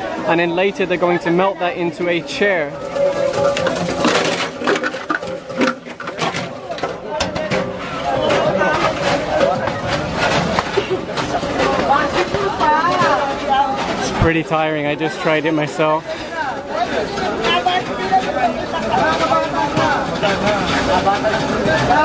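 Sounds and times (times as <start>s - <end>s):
people talking: 0.0s - 22.0s
plastic bottles cracking in shredder: 2.0s - 22.0s.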